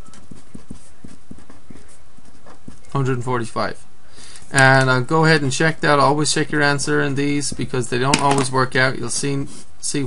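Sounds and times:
pen tapping while writing: 0.0 - 2.9.

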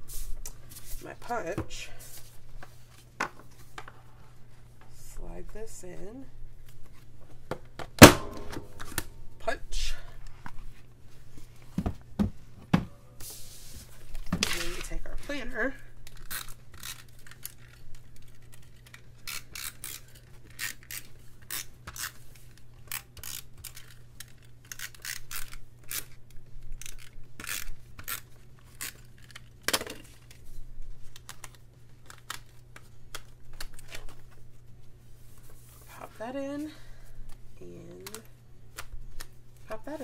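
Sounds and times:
paper pages clicking onto binding discs: 31.0 - 34.4.

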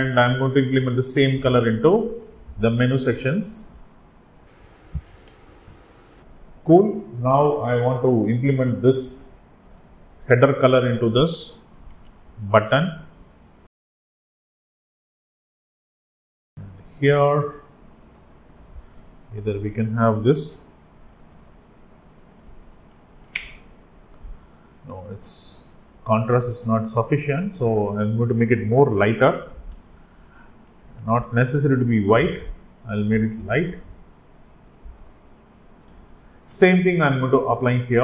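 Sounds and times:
faint room hiss: 0.0 - 13.7, 16.6 - 38.0
faint computer control clicks: 4.6 - 6.2, 34.9 - 35.2.

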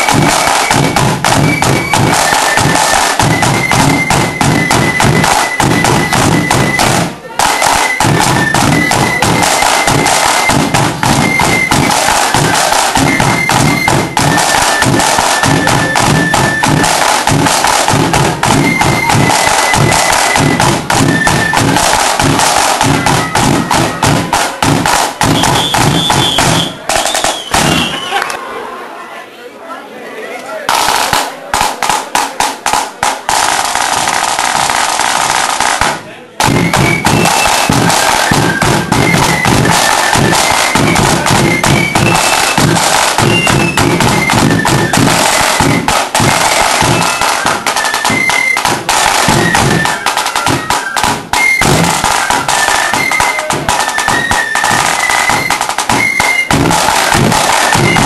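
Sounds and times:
bass drum: 0.0 - 28.0, 30.8 - 49.9, 51.0 - 53.9
flutes playing melody: 0.0 - 28.4, 36.4 - 58.0
snare drumming: 0.0 - 28.4, 30.7 - 58.0.

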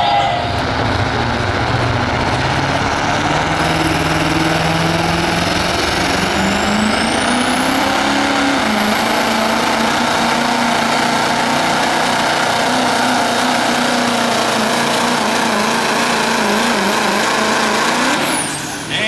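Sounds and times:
high falling whistle: 0.0 - 0.9
diesel engine at full throttle: 0.0 - 19.0.

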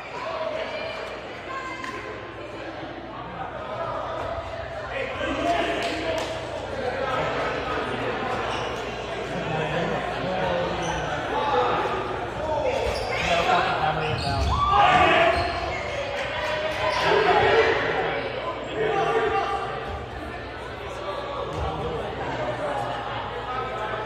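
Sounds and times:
players shouting: 10.6 - 22.6.

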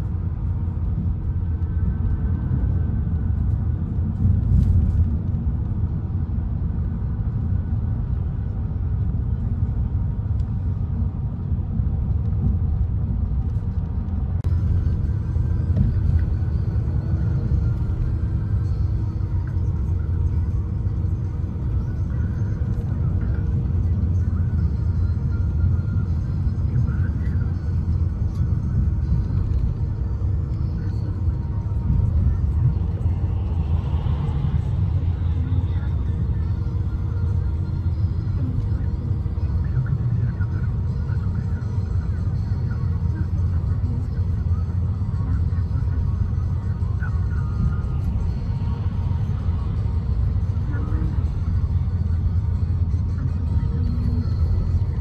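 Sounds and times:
vehicle road rumble: 0.0 - 55.0.

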